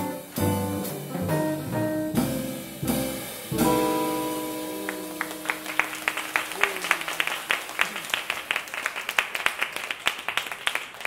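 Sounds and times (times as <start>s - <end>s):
guitar and double bass chord: 0.0s - 5.6s
audience clapping: 4.6s - 11.0s.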